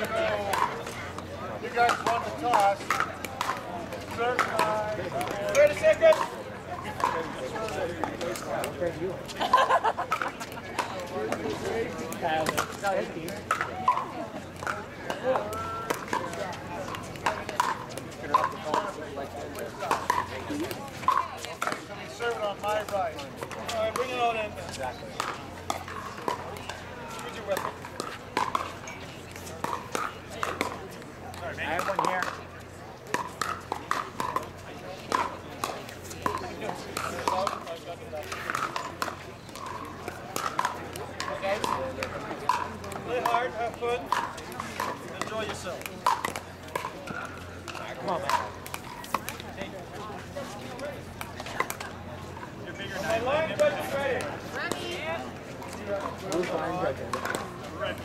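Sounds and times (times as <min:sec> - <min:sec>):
paddles striking plastic balls: 0:00.0 - 0:28.8, 0:29.4 - 0:49.7, 0:50.5 - 0:52.0, 0:53.2 - 0:58.0
people talking: 0:00.0 - 0:58.0.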